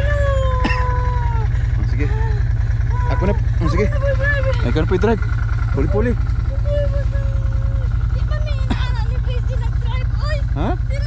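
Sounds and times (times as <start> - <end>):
engine idling with low throb: 0.0 - 11.0.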